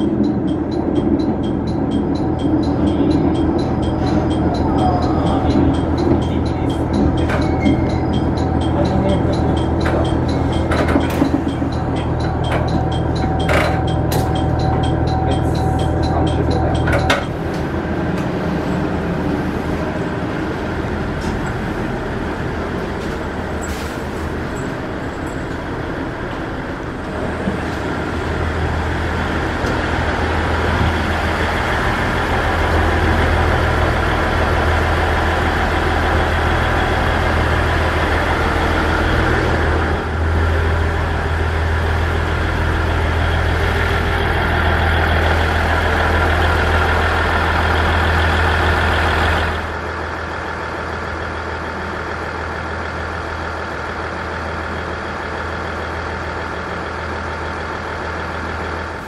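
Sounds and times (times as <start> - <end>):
diesel engine idling: 0.0 - 59.0.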